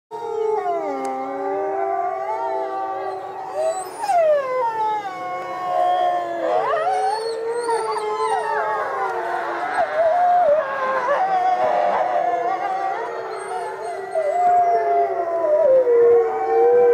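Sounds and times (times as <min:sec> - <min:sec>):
wolves howling: 0:00.2 - 0:16.9.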